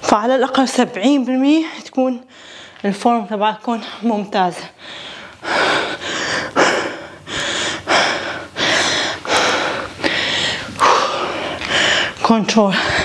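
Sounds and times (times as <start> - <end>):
woman breathing hard: 2.3 - 2.8, 4.7 - 13.0.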